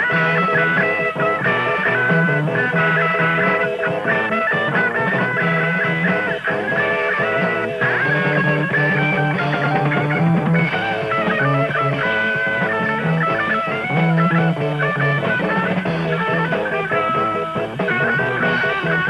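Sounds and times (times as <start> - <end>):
instrumental rock music: 0.0 - 19.0.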